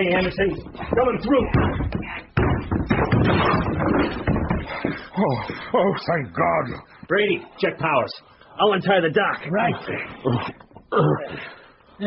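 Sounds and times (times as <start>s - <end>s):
hurried footsteps: 0.0s - 8.1s
crashes and knocks on door: 0.6s - 5.1s.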